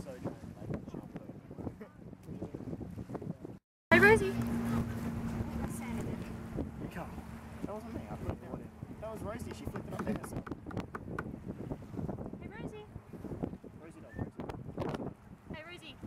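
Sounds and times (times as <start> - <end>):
wind noise on microphone: 0.0 - 16.0
voices talking: 3.9 - 11.2.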